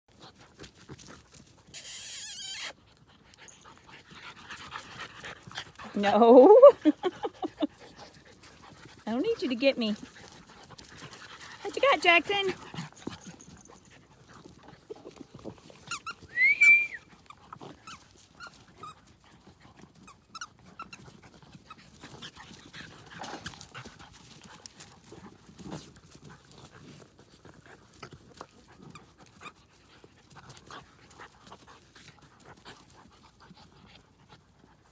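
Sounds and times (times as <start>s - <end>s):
puppies scuffling and rustling: 0.1s - 1.7s, 2.8s - 16.4s, 17.0s - 34.9s
puppy squealing: 1.7s - 2.8s.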